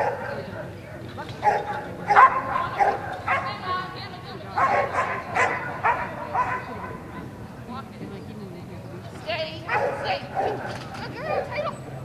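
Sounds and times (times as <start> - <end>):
dog barking: 0.0 - 0.7, 1.4 - 3.6, 4.6 - 7.0, 9.7 - 11.6.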